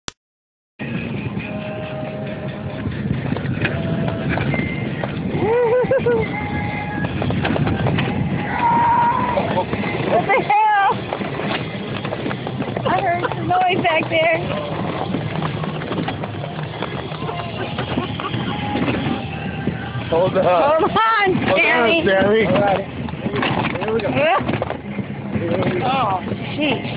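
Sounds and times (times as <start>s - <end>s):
person laughing: 5.4s - 6.3s, 17.2s - 18.8s
golf cart rattling over rocks: 6.5s - 26.9s.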